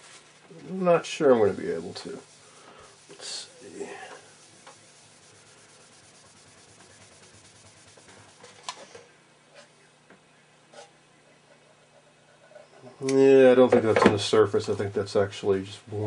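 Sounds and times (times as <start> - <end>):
cloth rubbing on plastic: 0.0 - 9.0
low steady hum: 0.0 - 16.0.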